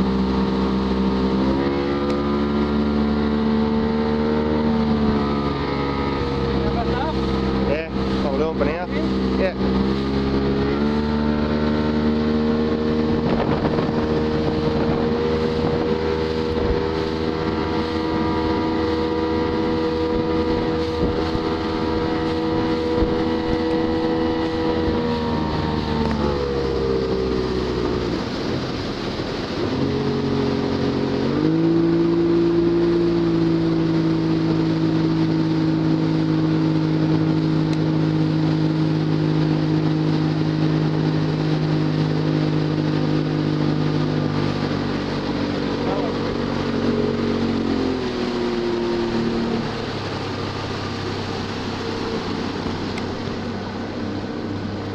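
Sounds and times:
motorboat engine running: 0.0 - 54.9
water rushing: 0.0 - 54.9
wind: 0.0 - 54.9.

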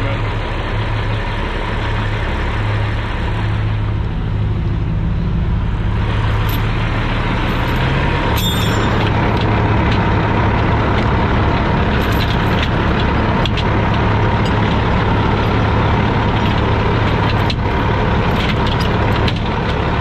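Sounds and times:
diesel truck engine idling: 0.0 - 20.0
metal chain clinking: 6.3 - 6.8, 7.4 - 9.2, 11.9 - 12.8.

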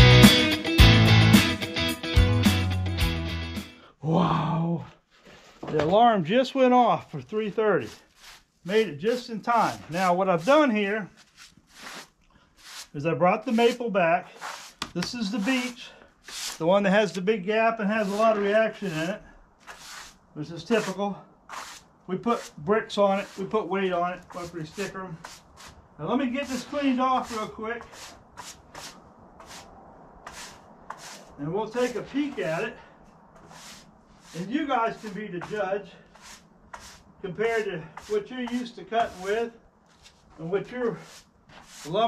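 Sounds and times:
hand brush sweeping sawdust: 7.1 - 42.0.

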